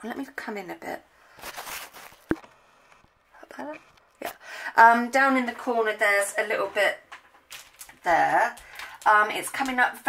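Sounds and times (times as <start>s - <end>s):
camera handling rustle: 1.4s - 3.1s.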